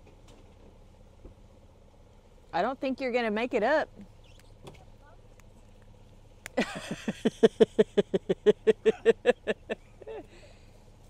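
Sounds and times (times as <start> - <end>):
person laughing hard: 6.6 - 10.3.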